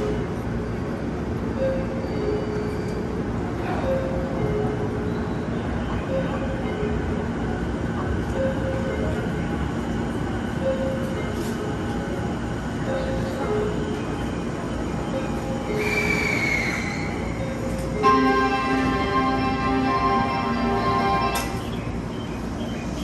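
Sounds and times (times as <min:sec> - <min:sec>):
train rumble and hum: 0:00.0 - 0:23.0.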